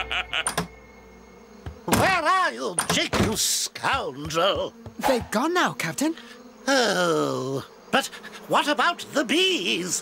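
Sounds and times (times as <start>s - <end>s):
cartoon background music: 0.0s - 0.7s.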